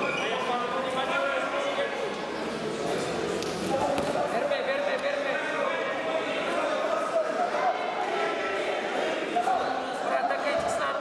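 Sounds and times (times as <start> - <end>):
many voices chattering: 0.0 - 11.0.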